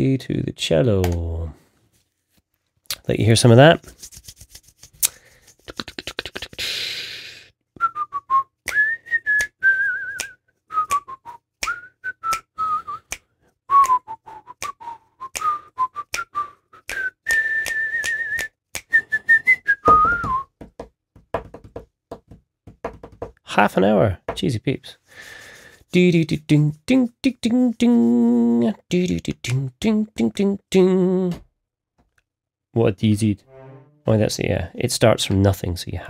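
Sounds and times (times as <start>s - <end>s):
person whistling a tune: 7.8s - 20.6s.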